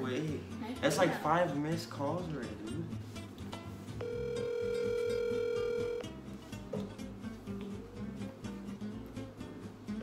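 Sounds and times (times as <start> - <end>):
background music: 0.0 - 10.0
telephone ringback tone: 4.0 - 6.2.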